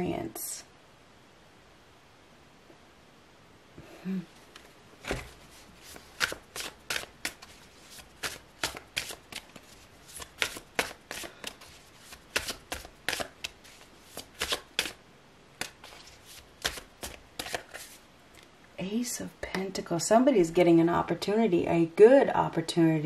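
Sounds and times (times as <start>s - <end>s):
cards snapping while shuffled: 5.9s - 15.0s, 15.6s - 17.9s.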